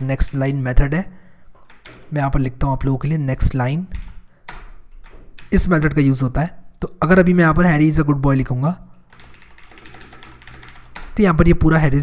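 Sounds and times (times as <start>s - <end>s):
keyboard typing: 1.5s - 2.4s, 3.8s - 6.1s, 8.9s - 11.8s.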